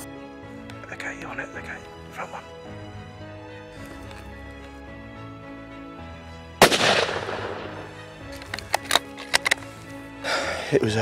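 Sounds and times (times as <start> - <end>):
background music: 0.0 - 11.0
rifle shot echoing: 6.6 - 8.1.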